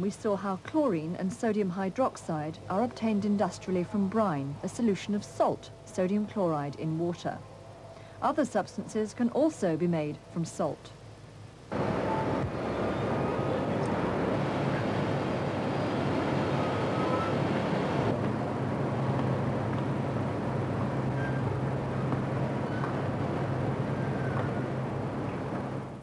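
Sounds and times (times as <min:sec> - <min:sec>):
low steady hum: 0:00.0 - 0:26.0.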